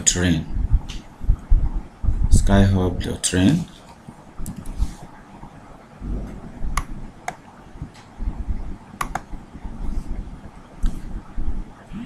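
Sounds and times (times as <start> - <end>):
computer mouse click: 9.0 - 9.3.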